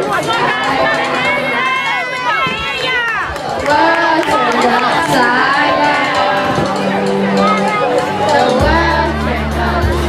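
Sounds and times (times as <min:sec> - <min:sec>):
children shouting: 0:00.0 - 0:09.5.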